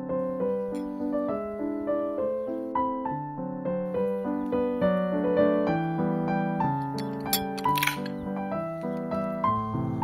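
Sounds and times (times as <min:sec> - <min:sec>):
gentle piano music: 0:00.0 - 0:10.0.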